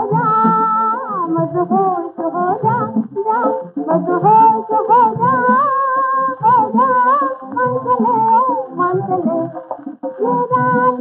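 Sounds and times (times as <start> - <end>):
low musical accompaniment: 0.0 - 11.0.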